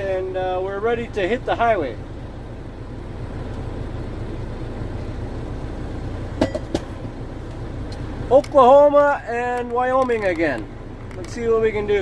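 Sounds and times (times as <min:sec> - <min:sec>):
diesel truck engine idling: 0:00.0 - 0:12.0.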